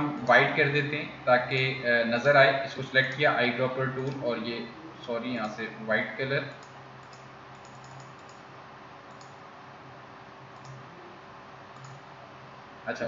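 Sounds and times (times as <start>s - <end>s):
low hum and hiss: 0.0s - 13.0s
mouse and keyboard clicks: 6.6s - 8.4s.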